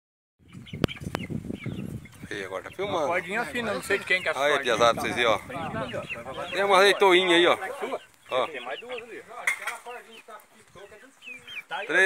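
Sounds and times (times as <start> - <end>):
chickens chirping: 0.4 - 12.0.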